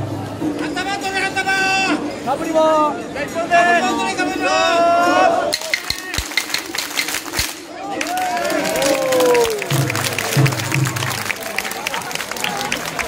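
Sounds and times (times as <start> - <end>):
wooden clappers: 5.5 - 13.0
crowd clapping in rhythm: 5.6 - 13.0.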